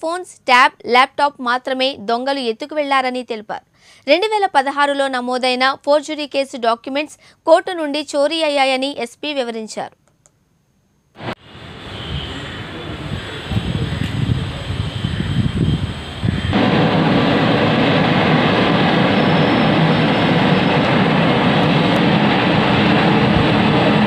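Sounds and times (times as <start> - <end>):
loud steady rushing noise: 11.2 - 24.0.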